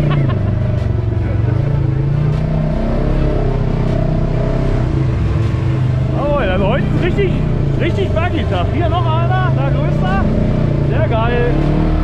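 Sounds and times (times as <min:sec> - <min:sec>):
off-road buggy engine at low revs: 0:00.0 - 0:12.0.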